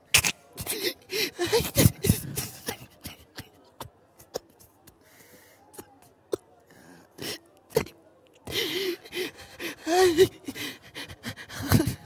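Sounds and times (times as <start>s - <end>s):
person gasping and moaning: 8.5s - 12.0s.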